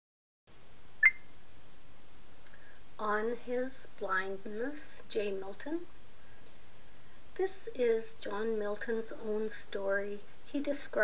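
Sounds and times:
faint steady hiss: 0.5s - 11.0s.

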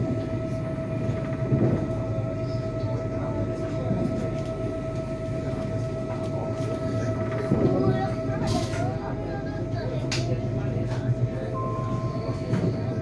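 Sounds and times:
constant high whine: 0.0s - 13.0s
train wheels rumbling on track: 0.0s - 13.0s.

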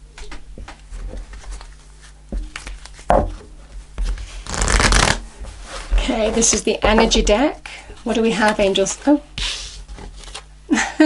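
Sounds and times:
cards being shuffled: 1.3s - 3.1s, 4.0s - 5.2s, 9.5s - 10.5s
cards riffling: 4.4s - 5.2s.

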